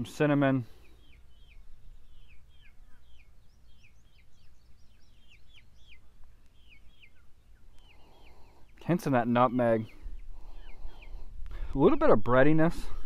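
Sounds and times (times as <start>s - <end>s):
songbirds chirping: 0.0s - 13.0s.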